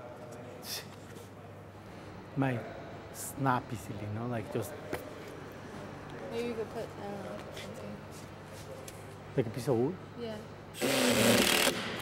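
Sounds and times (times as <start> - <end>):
cordless drill drilling into wood: 10.8 - 11.9.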